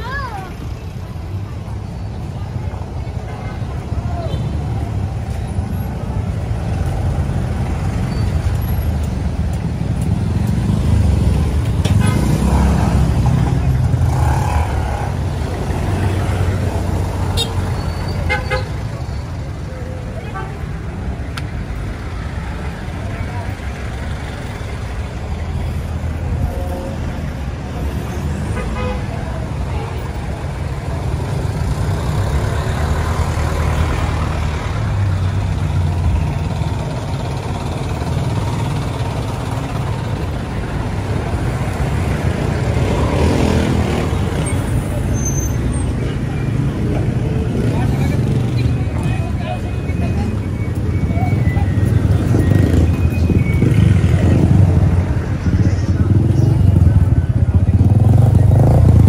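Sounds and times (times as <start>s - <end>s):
traffic engines rumbling: 0.0s - 59.0s
voices: 0.0s - 59.0s.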